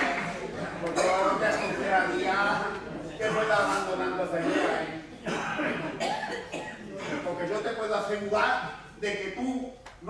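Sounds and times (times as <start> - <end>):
voice: 0.0 - 6.0, 6.9 - 9.8
person coughing: 1.0 - 1.8, 4.5 - 7.4.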